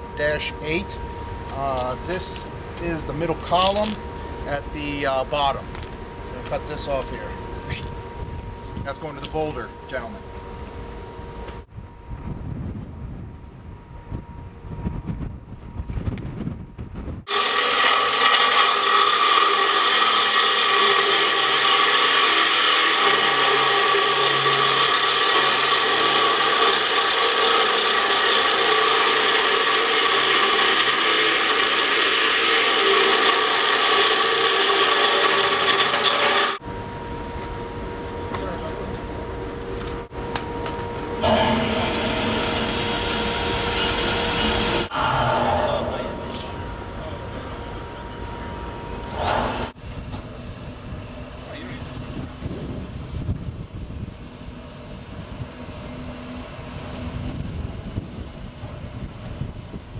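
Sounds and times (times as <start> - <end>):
quiet steady noise with hum: 0.0 - 17.4
reciprocating saw cutting steel: 17.2 - 36.6, 41.2 - 48.4, 49.0 - 49.8.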